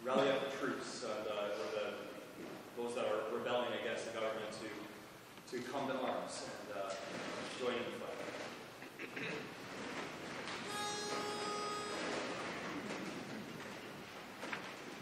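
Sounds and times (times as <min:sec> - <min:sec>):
pitch pipe note: 0:10.7 - 0:12.5.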